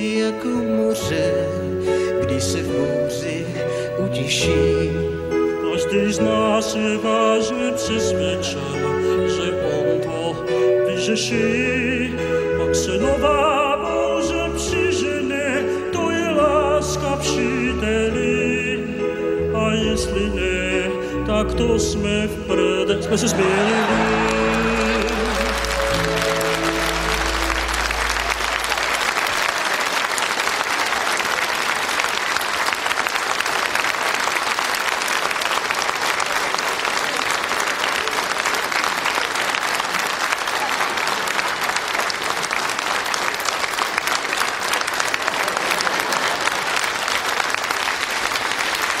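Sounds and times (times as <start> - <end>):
held musical chord: 19.1 - 29.5
theatre audience applauding: 23.1 - 49.0.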